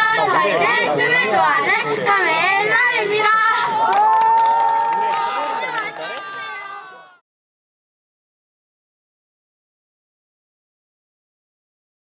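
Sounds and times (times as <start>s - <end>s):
crowd noise: 0.0s - 7.2s
people clapping: 3.5s - 7.2s.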